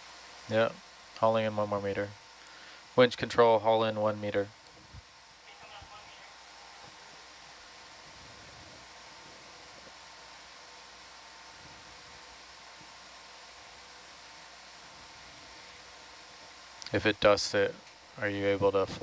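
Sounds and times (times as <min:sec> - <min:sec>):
faint humming tones: 0:00.0 - 0:19.0
steady hiss: 0:00.0 - 0:19.0.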